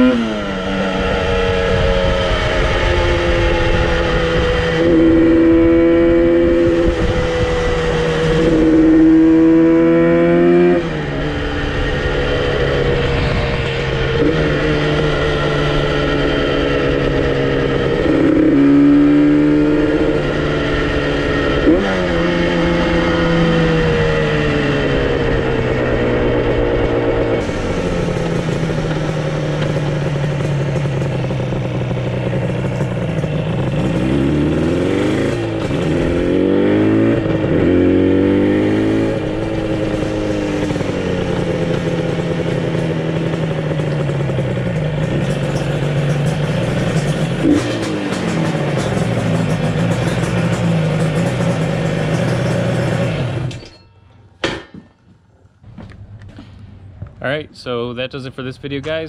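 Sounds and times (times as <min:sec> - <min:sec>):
motorcycle engine revving: 0:00.0 - 0:53.8
wind rush on microphone: 0:01.1 - 0:09.0, 0:11.3 - 0:15.4.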